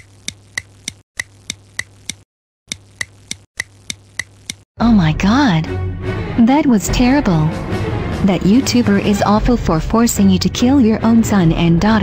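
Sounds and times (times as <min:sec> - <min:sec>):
clock ticking: 0:00.0 - 0:04.6.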